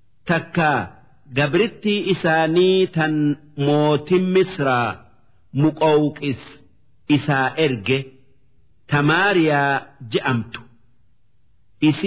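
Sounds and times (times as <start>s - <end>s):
man reciting melodic chant: 0.2s - 8.2s, 8.9s - 10.7s.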